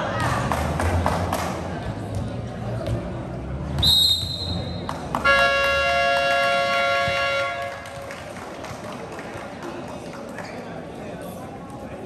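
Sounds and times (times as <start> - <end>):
referee whistle: 3.8 - 4.9.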